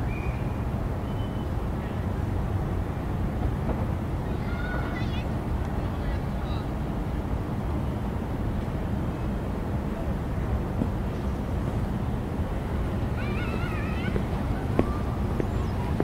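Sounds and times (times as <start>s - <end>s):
low outdoor rumble: 0.0s - 16.0s.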